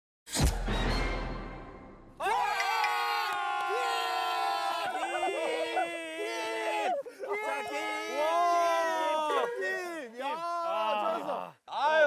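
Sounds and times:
men shouting and cheering: 2.2s - 12.0s.

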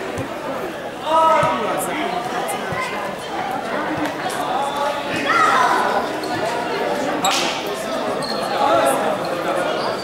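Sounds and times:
people talking with echo: 0.0s - 10.0s.

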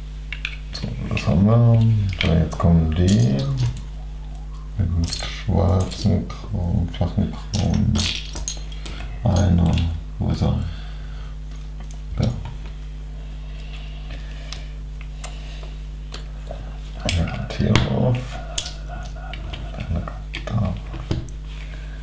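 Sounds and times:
low voice murmuring: 0.8s - 7.9s, 16.5s - 21.1s.

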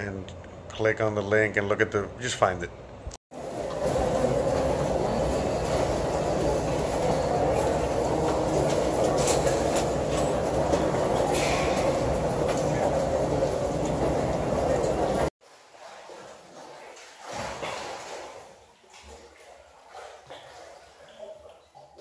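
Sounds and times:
heavy rain pouring: 3.4s - 15.3s.

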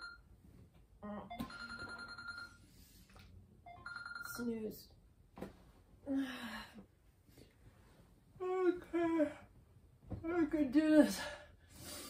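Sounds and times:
phone alarm ringtone: 0.0s - 0.3s, 1.3s - 2.8s, 3.7s - 4.6s
woman groaning sleepily: 6.0s - 6.8s.

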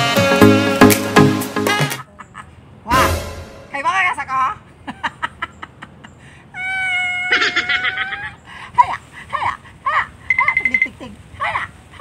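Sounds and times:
long high held cry: 6.5s - 8.4s.

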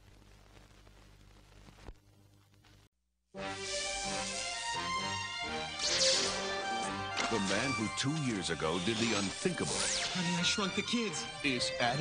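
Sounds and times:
trailer music with sustained chords: 3.4s - 11.6s
high hissing sweep: 5.7s - 6.8s.

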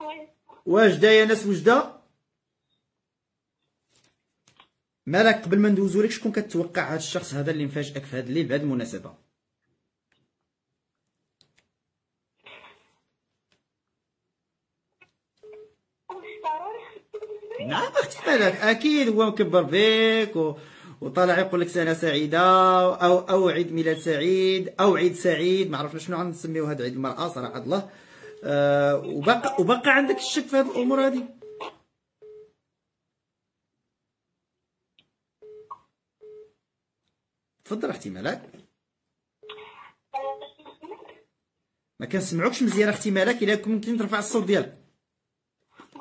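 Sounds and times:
telephone busy signal beeps: 31.4s - 32.5s, 35.4s - 36.5s.

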